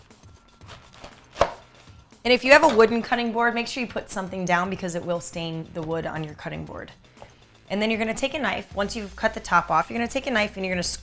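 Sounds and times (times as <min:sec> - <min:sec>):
knife cutting fruit: 0:00.6 - 0:01.8.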